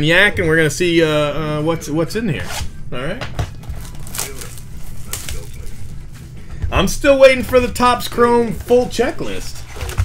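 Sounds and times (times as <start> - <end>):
plastic wrap tearing and crinkling: 3.6 - 6.0.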